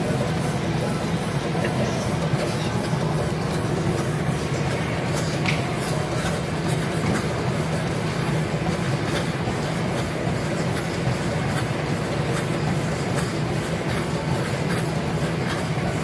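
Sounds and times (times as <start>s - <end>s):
runner's pounding footsteps: 0.0s - 16.0s
treadmill belt rumble: 0.0s - 16.0s.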